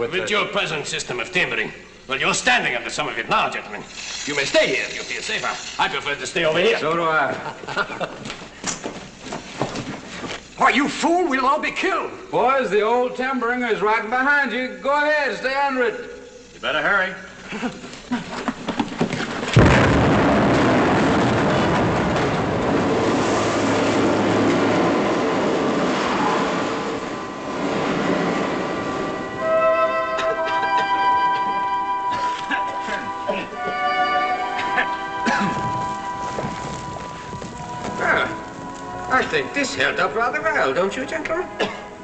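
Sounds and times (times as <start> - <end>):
rumbling of falling rock: 18.8 - 28.1, 35.3 - 39.1
explosion: 19.5 - 29.5
dramatic orchestral music: 23.2 - 42.0.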